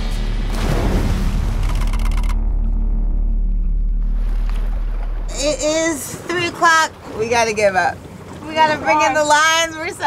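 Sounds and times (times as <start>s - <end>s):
boat engine rumbling: 0.0s - 10.0s.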